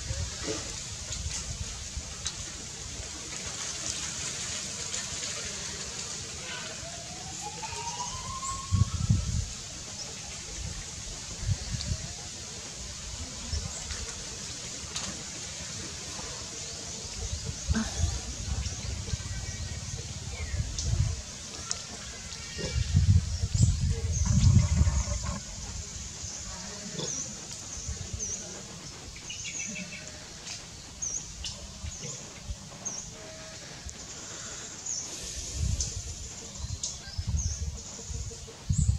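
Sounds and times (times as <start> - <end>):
wind buffeting microphone: 8.1 - 12.3, 17.1 - 26.6, 35.2 - 38.9.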